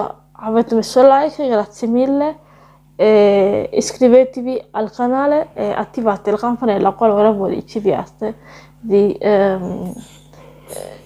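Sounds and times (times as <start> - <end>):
woman's hesitant wavering voice: 9.4 - 11.0.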